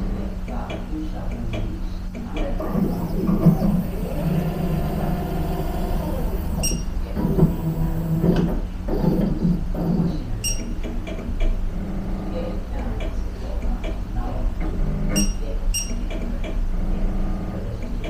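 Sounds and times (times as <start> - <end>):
machine hum and whir: 0.0 - 18.0
short high beeps: 10.4 - 10.7, 15.2 - 16.0.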